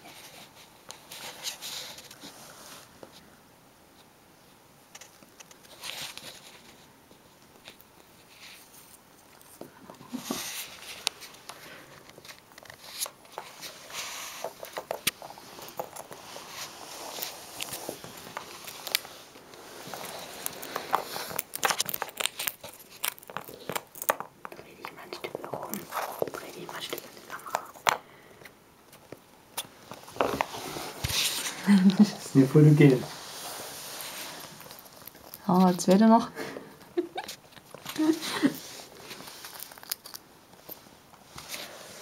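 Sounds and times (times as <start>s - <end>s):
hamster gnawing peanut shell: 7.6s - 28.0s, 34.6s - 35.9s, 39.2s - 40.3s.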